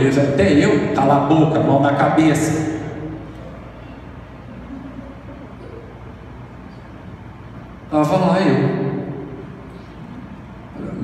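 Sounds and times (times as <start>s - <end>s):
room background noise: 0.0s - 11.0s.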